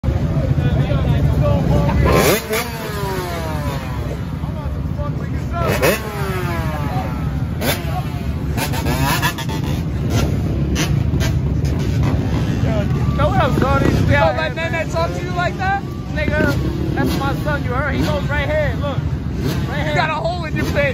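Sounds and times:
dirt bike engines idling: 0:00.0 - 0:20.9.

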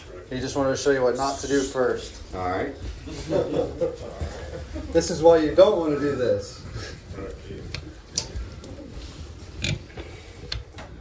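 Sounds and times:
clicks and knocks of pipe fittings: 0:09.5 - 0:11.0.

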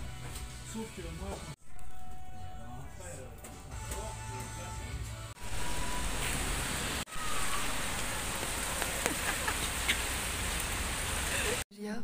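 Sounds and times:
steady rain falling: 0:05.4 - 0:11.6.

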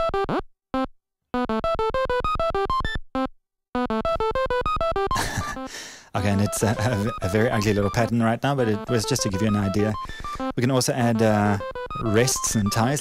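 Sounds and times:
synth step sequencer pattern: 0:06.2 - 0:13.0.

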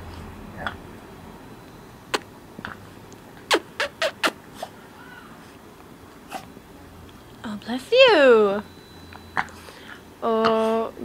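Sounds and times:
dog sneezing: 0:03.5 - 0:04.8, 0:06.3 - 0:06.5.

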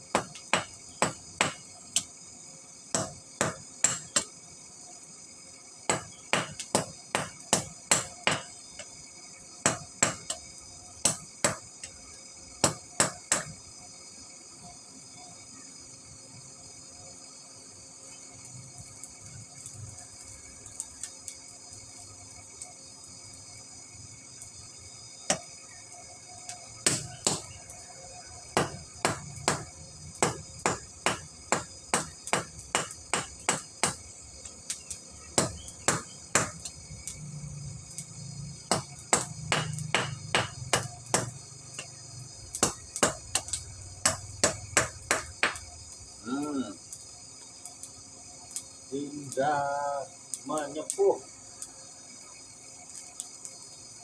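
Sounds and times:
crickets chirring: 0:00.0 - 0:54.0.

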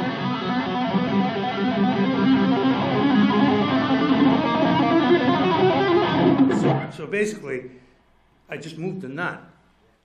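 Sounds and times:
electric guitar fast legato run: 0:00.0 - 0:06.9.

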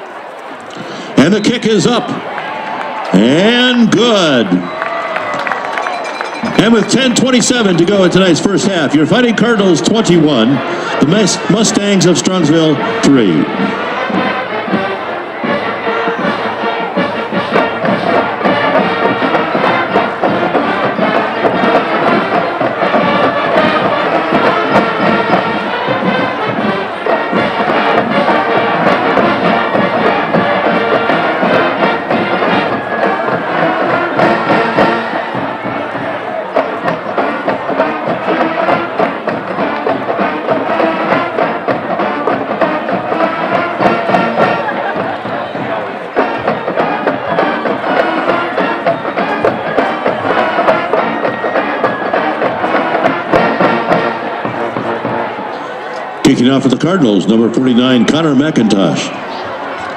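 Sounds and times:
crowd noise: 0:00.0 - 0:59.9
marching band playing: 0:00.0 - 0:59.9.

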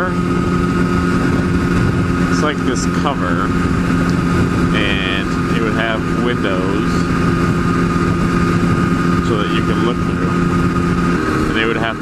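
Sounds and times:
motorcycle engine cruising: 0:00.0 - 0:12.0
wind rumble on microphone: 0:00.0 - 0:12.0.

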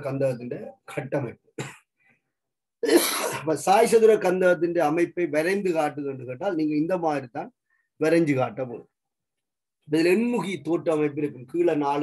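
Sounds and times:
man speaking: 0:00.0 - 0:01.5, 0:03.3 - 0:08.9, 0:09.9 - 0:12.0
man coughing: 0:01.6 - 0:01.9, 0:02.8 - 0:03.6.

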